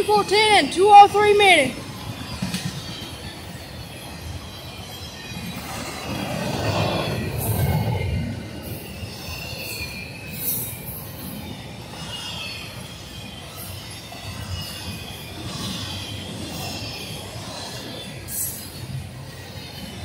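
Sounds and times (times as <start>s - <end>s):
freight train wheels rumbling on rail: 0.0s - 20.0s.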